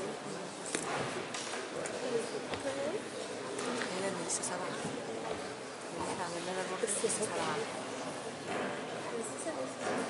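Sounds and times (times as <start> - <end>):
murmur of students talking: 0.0 - 10.0.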